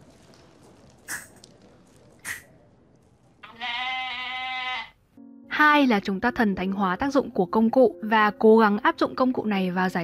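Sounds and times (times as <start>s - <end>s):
sheep bleating: 3.4s - 5.0s.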